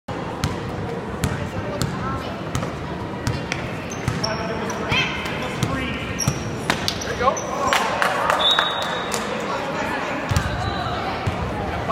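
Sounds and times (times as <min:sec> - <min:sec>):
spectators chattering: 0:00.1 - 0:11.9
basketball bouncing on gym floor: 0:00.4 - 0:04.3.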